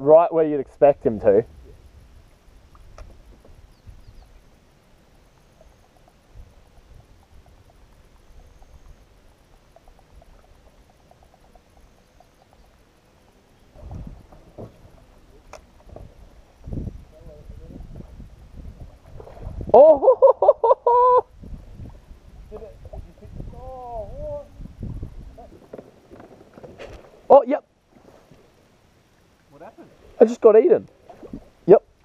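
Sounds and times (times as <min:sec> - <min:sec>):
calm river water: 0:00.0 - 0:32.0
wind rumble on microphone: 0:01.0 - 0:04.5, 0:13.7 - 0:20.2, 0:21.2 - 0:27.2, 0:31.1 - 0:31.6
sharp click: 0:02.8 - 0:03.2
dull knocks: 0:13.8 - 0:15.0.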